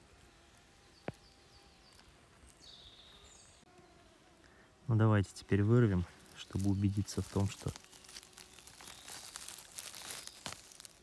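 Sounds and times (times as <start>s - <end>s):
rustling of pine needles and leaves: 0.0s - 11.0s.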